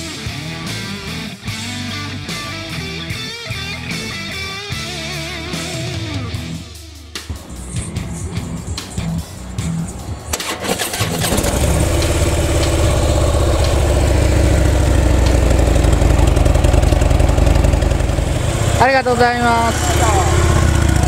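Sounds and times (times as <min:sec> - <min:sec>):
motorcycle engine starting and idling: 0:07.3 - 0:21.0.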